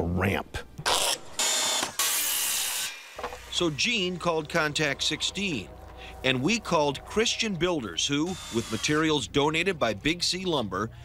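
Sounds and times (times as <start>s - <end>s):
circular saw cutting wood: 1.1s - 9.4s.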